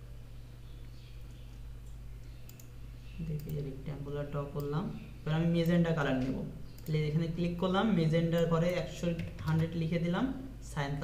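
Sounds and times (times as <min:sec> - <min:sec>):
steady low hum: 0:00.0 - 0:11.0
computer mouse clicks: 0:00.8 - 0:03.7.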